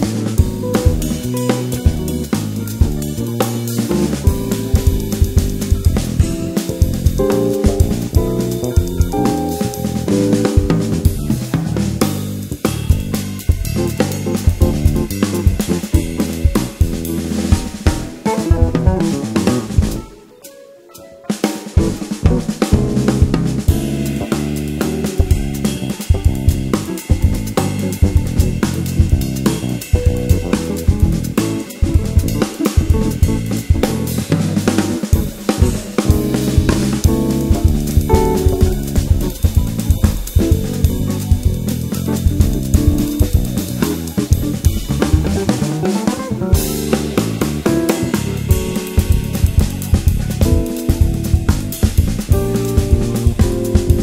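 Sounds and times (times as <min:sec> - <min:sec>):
bass: 0:00.0 - 0:20.2, 0:21.7 - 0:54.0
drum kit: 0:00.0 - 0:54.0
piano: 0:00.0 - 0:54.0.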